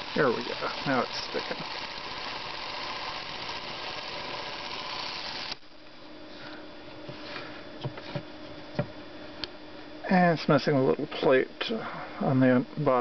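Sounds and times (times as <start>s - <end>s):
clockwork camera motor whirring: 0.0s - 5.7s.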